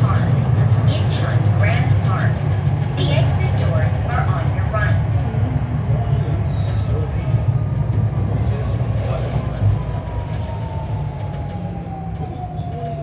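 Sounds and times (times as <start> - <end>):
wheels rumbling on rail: 0.0 - 13.0.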